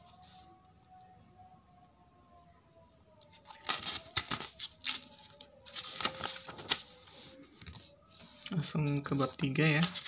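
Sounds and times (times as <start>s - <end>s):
paper pages flipping: 3.2s - 10.0s.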